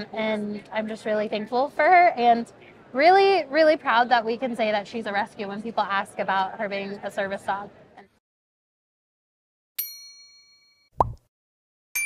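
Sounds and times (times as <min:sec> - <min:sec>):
bright bell ding: 0:09.8 - 0:10.9.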